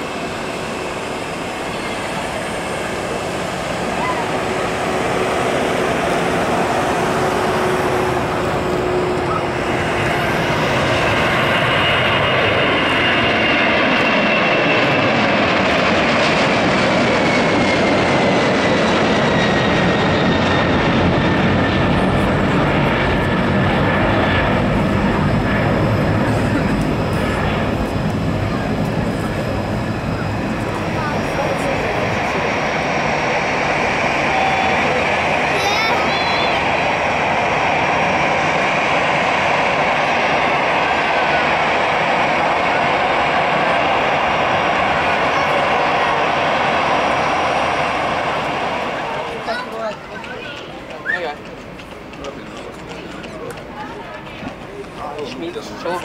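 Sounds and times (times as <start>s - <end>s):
jet engine roar with whine: 0.0s - 56.0s.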